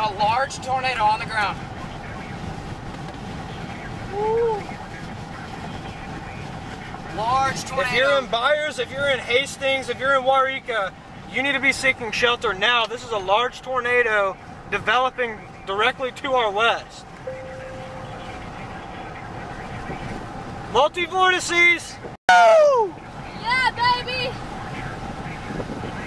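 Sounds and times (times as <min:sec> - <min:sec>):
road and wind noise in car cabin: 0:00.0 - 0:26.0
faint steady tone: 0:17.2 - 0:20.0.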